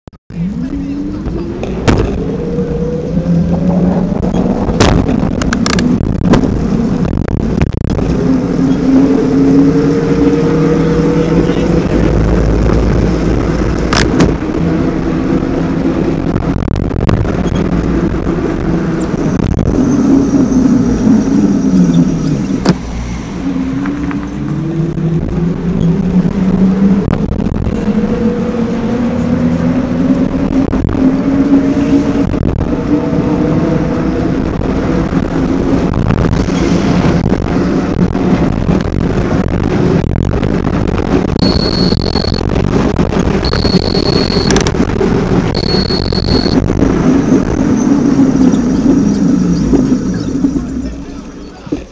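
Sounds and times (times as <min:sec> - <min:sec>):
wind and road noise: 0:00.3 - 0:51.9.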